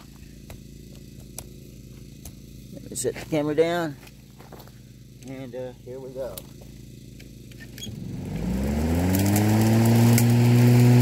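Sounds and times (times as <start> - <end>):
electric lawn mower humming: 0.0 - 2.8, 6.4 - 11.0.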